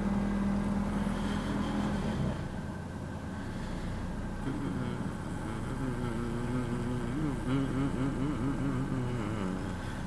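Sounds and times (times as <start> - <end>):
person singing slow tune: 4.2 - 10.0.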